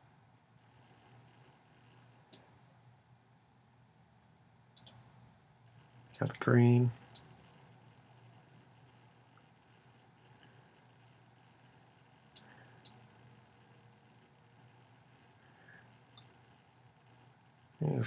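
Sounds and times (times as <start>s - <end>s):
computer mouse clicks: 2.3s - 2.5s, 4.8s - 5.1s, 12.3s - 13.0s.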